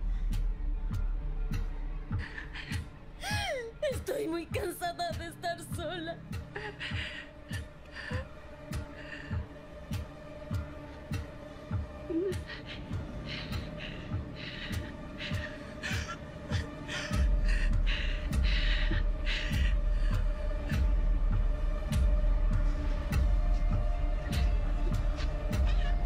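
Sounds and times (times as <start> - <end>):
low heartbeat-like pulse: 4.5 - 26.0.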